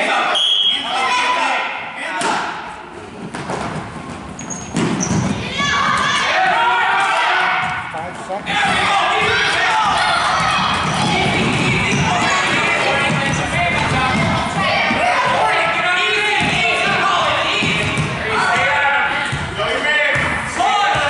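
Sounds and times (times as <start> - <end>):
spectators shouting: 5.4 - 7.8, 8.5 - 19.1
basketball bouncing on wooden floor: 10.3 - 15.4, 16.4 - 18.7.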